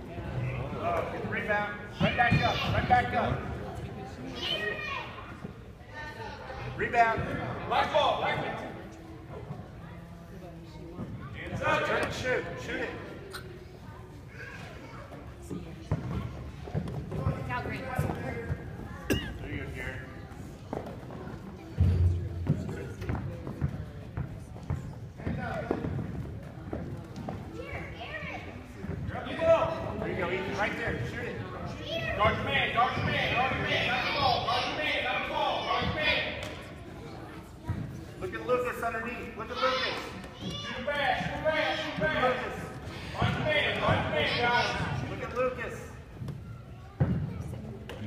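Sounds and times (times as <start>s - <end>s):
children playing basketball: 0.2s - 48.0s.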